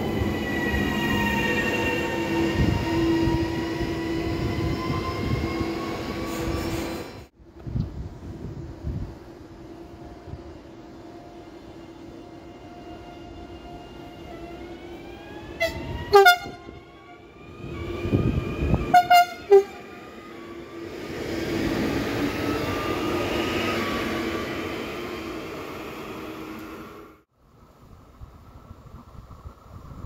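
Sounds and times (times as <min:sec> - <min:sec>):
electric train drive whining: 0:07.6 - 0:27.2
train horn toots: 0:15.6 - 0:16.9, 0:18.8 - 0:19.8.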